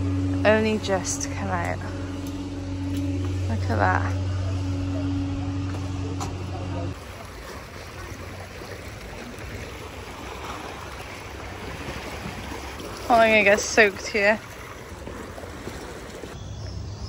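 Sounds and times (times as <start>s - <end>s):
low mechanical hum: 0.0s - 17.0s
waves lapping against rocks: 6.9s - 16.4s.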